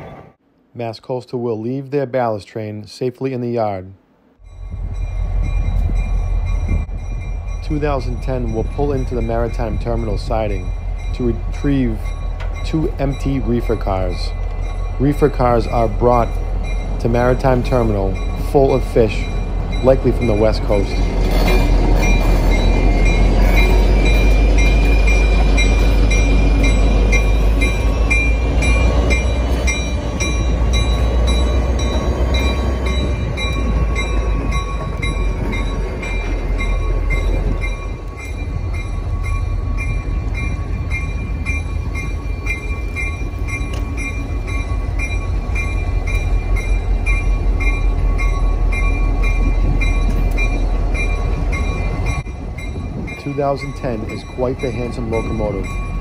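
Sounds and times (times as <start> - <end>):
diesel locomotive engine rumble: 4.4 - 56.0.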